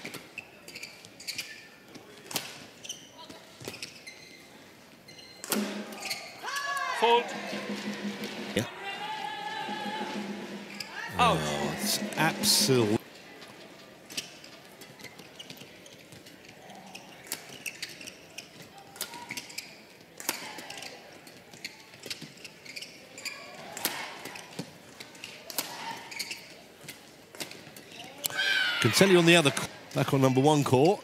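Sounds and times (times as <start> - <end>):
faint arena murmur: 0.0 - 31.0.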